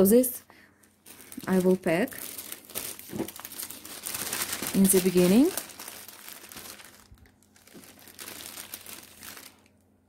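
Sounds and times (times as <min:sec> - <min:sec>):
plastic bag crinkling: 0:00.9 - 0:10.0.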